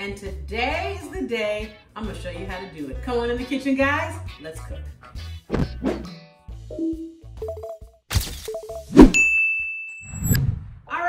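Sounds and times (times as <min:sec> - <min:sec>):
bell ding: 0:09.2 - 0:10.4.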